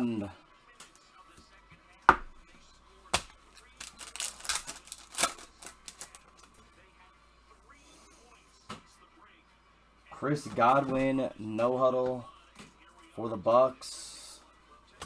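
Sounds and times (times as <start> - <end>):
foil wrapper crinkling and tearing: 3.6 - 6.4.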